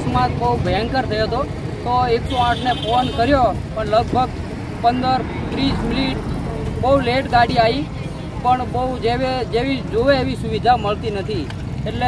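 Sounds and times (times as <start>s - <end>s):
low rumble of traffic: 0.0s - 12.0s
man talking: 0.0s - 12.0s.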